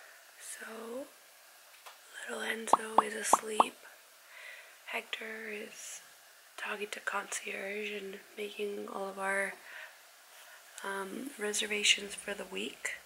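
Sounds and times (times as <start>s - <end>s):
sharp pops: 2.7s - 3.7s.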